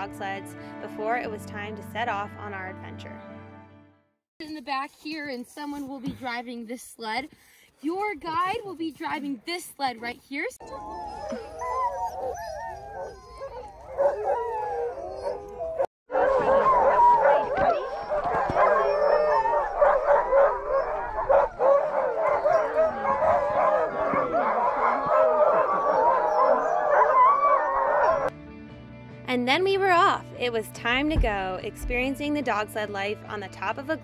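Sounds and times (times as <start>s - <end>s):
dogs howling: 10.6s - 28.3s
dogs barking: 10.7s - 28.3s.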